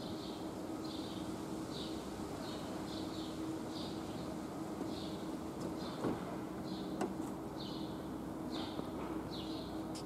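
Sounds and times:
steady low hum: 0:00.0 - 0:10.0
traffic noise: 0:00.0 - 0:10.0.

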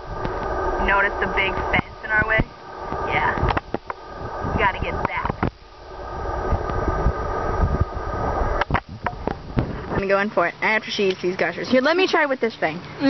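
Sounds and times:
microphone handling rumble: 0:00.0 - 0:10.5.

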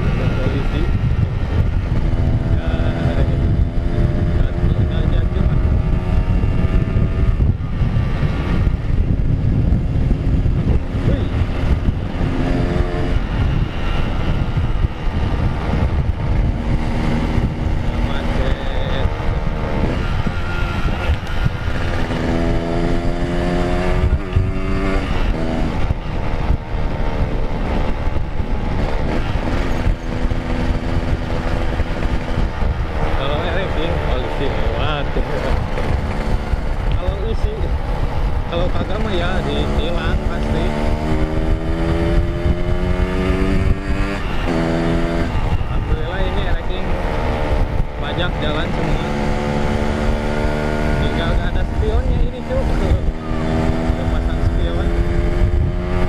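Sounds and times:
motorcycle engine revving: 0:00.0 - 0:56.0
wind noise: 0:00.0 - 0:56.0.

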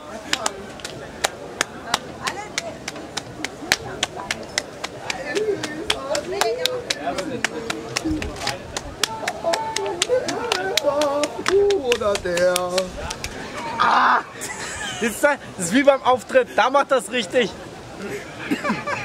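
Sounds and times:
hand-clapping game: 0:00.3 - 0:13.4.

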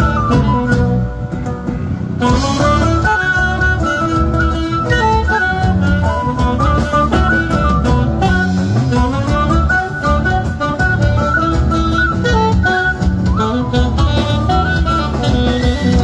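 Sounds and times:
live band music: 0:00.0 - 0:16.0.

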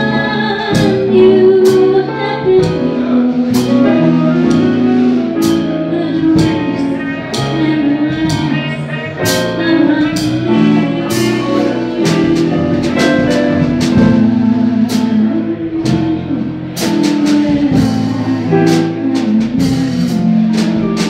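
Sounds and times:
drum kit: 0:00.0 - 0:21.0
keyboard: 0:00.0 - 0:21.0.

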